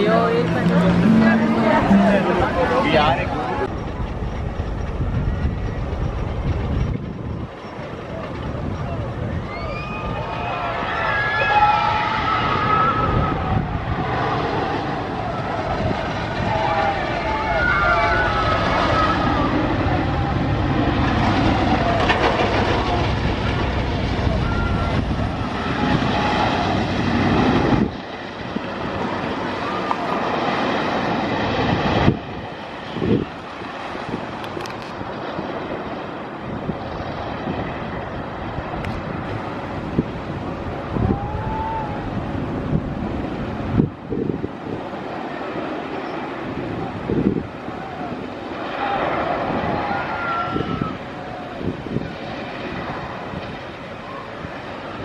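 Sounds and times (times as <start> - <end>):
roller coaster rumbling on track: 0.0 - 55.0
riders screaming: 9.4 - 13.8, 16.4 - 20.4, 40.9 - 42.2, 47.6 - 51.7.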